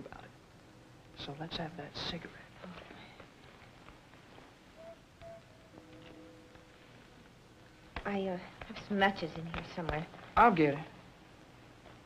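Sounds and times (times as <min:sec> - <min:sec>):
faint sustained tones: 0:04.6 - 0:08.5.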